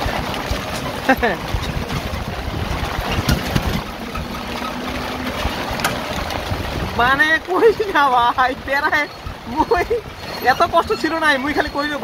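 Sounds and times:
heavy rain hissing: 0:00.0 - 0:12.0
tyres on flooded road: 0:00.0 - 0:12.0
vehicle knocks: 0:01.6 - 0:06.4.

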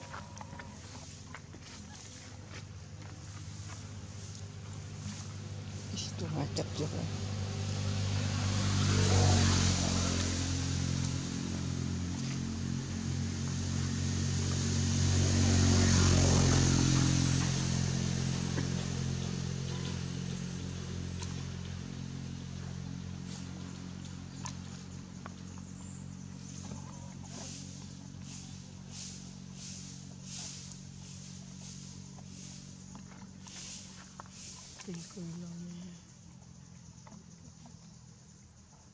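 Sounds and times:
motor vehicles passing by: 0:00.0 - 0:38.9.

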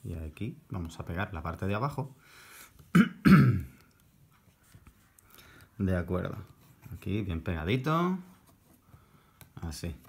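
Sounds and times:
man coughing: 0:02.9 - 0:03.8.

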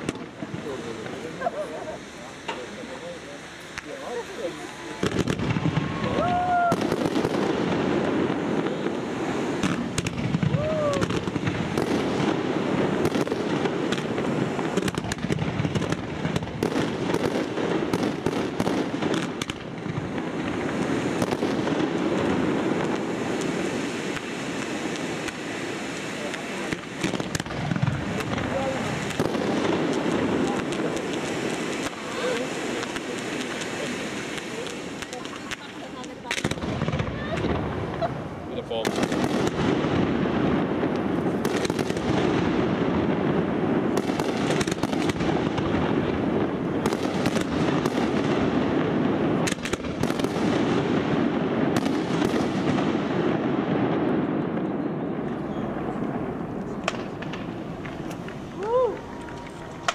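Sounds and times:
fireworks cracks and bangs: 0:00.0 - 0:59.9
fireworks hissing and crackling: 0:00.0 - 0:59.9.

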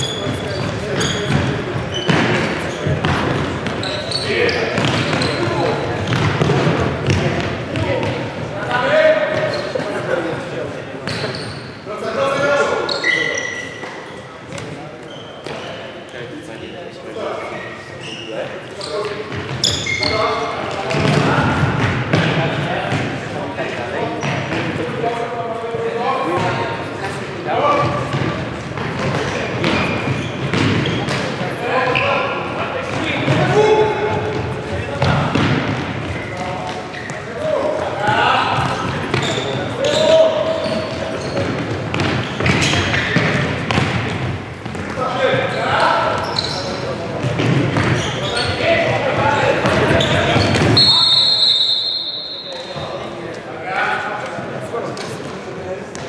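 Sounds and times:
ball bouncing on wooden floor: 0:06.0 - 0:08.2, 0:41.4 - 0:45.0.

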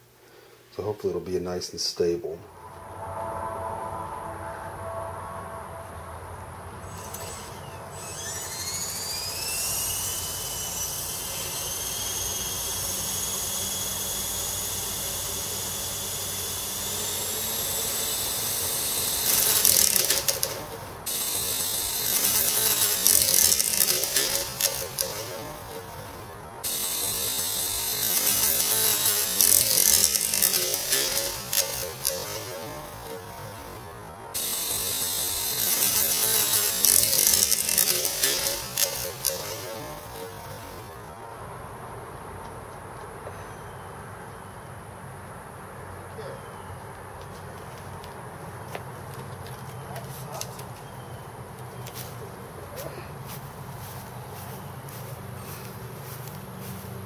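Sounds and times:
helicopter rotor rushing: 0:06.8 - 0:41.0
electric motor and gear whine: 0:06.8 - 0:41.4.

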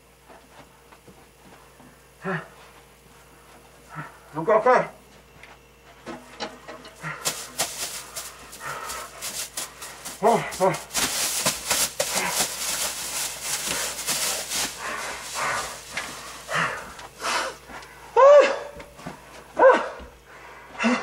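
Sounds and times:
man breathing hard: 0:01.8 - 0:04.4, 0:07.0 - 0:21.0
man gasping: 0:02.2 - 0:02.7, 0:07.0 - 0:10.9, 0:14.6 - 0:18.8, 0:19.6 - 0:21.0.

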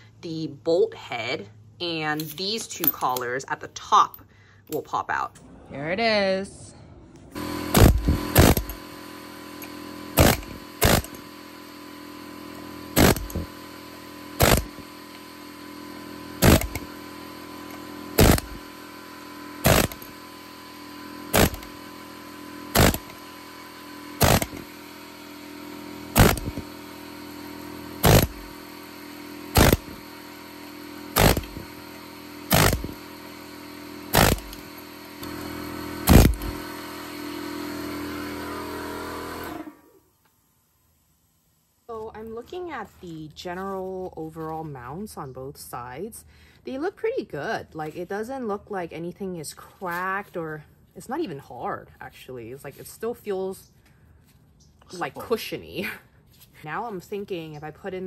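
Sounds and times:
steady hum: 0:05.4 - 0:37.5
pneumatic air hammer bursts: 0:07.4 - 0:18.8, 0:19.4 - 0:37.1.

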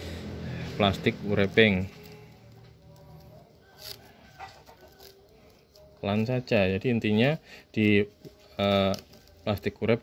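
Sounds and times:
plastic tape crinkling: 0:00.8 - 0:10.0.

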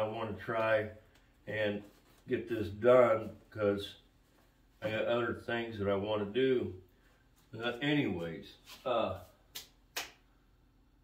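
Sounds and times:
sharp hand claps: 0:09.5 - 0:10.3.

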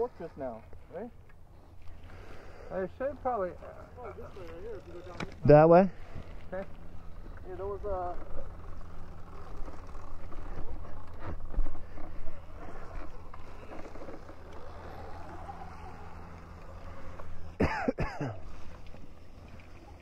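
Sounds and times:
steady low hum: 0:00.0 - 0:20.0
person laughing: 0:17.6 - 0:18.6.

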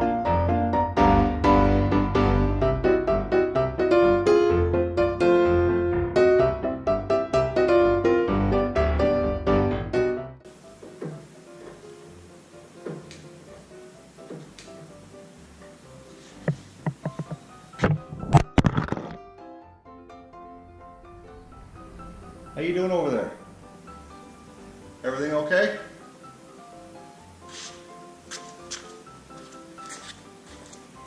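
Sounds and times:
background music: 0:00.0 - 0:31.0
faint workshop knocks: 0:10.8 - 0:11.8, 0:12.8 - 0:13.2, 0:16.4 - 0:18.1.

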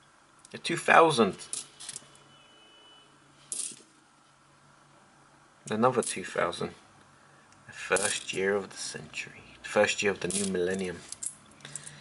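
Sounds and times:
coins clinking: 0:01.4 - 0:02.1, 0:03.5 - 0:03.9, 0:08.0 - 0:08.4, 0:10.2 - 0:12.0.

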